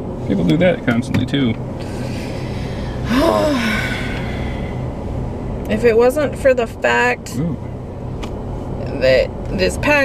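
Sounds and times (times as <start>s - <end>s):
low hum inside car: 0.0s - 10.0s.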